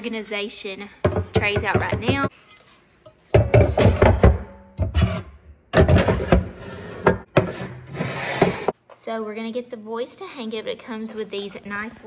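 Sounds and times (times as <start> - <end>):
pans scraping along wood: 3.5 - 8.8.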